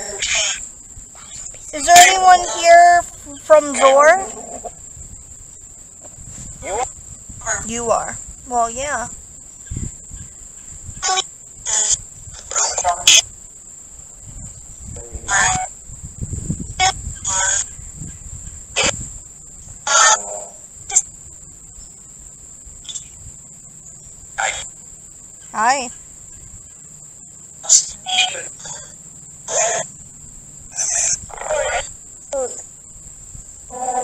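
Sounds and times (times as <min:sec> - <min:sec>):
static bursts: 0:00.0 - 0:33.7
clipped voice snippets: 0:15.0 - 0:15.7.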